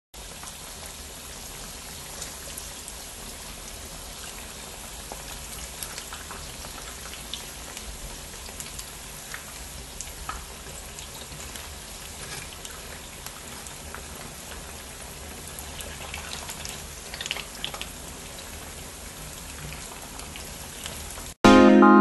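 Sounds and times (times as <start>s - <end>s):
deep-frying sizzle with pops: 0.2s - 21.4s.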